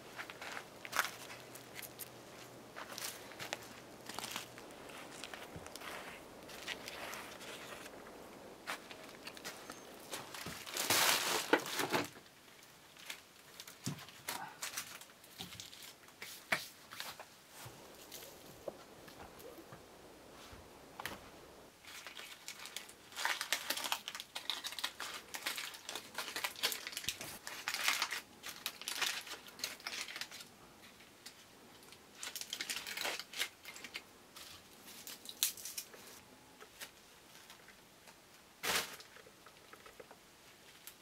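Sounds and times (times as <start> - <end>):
aluminium foil crinkling: 0.0 - 19.6, 21.8 - 41.0
loud foil crackle: 0.1 - 7.9, 8.6 - 17.2, 21.8 - 37.7, 38.6 - 40.0.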